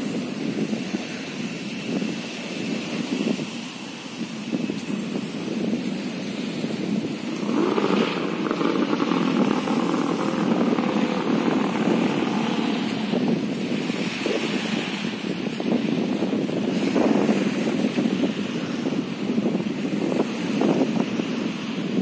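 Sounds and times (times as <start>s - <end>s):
outdoor background noise: 0.0s - 22.0s
motor engine passing: 7.0s - 14.8s.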